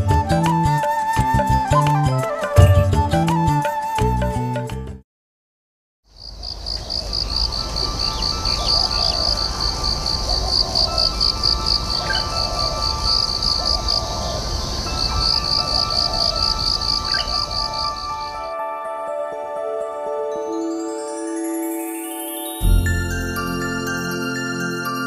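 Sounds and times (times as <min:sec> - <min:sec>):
pulsing insect chirp: 0:06.2 - 0:18.5
soft sustained music tones: 0:14.8 - 0:25.0.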